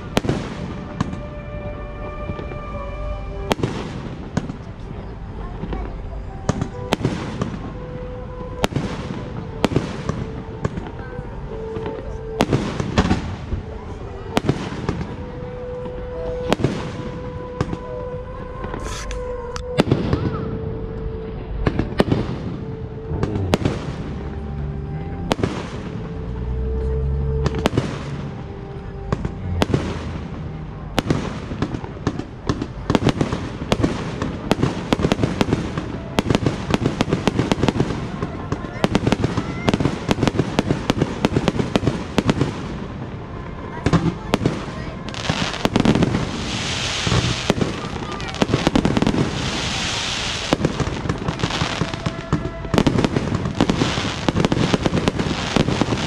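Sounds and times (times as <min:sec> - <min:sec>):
fireworks bursting: 0:00.0 - 0:56.0
fireworks crackling: 0:00.0 - 0:56.0.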